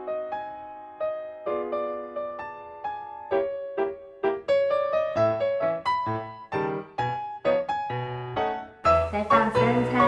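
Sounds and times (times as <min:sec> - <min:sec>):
gentle piano melody: 0:00.0 - 0:10.0.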